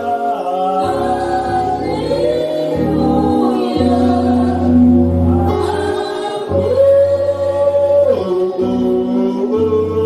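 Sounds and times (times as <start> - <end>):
worship singing: 0.0 - 10.0.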